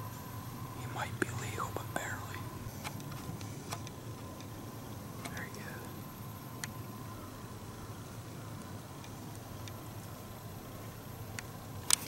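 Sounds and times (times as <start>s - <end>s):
hushed whispering: 0.8s - 2.6s, 5.2s - 6.0s.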